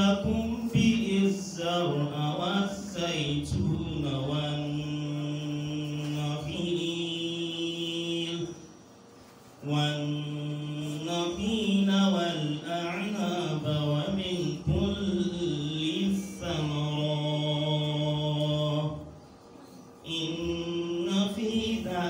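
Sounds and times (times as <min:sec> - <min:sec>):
man chanting into a microphone: 0:00.0 - 0:08.6, 0:09.6 - 0:19.1, 0:20.0 - 0:22.0.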